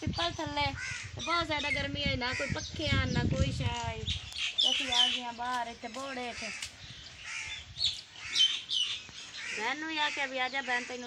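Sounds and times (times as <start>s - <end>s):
birds calling: 0.0s - 11.0s
crow-like caws: 0.8s - 1.3s, 6.3s - 7.6s, 8.2s - 8.8s, 9.4s - 11.0s.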